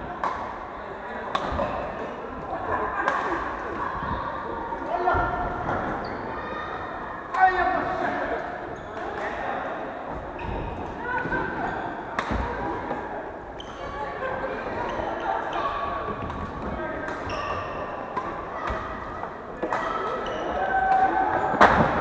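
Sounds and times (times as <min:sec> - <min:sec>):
players' voices: 0:00.0 - 0:22.0.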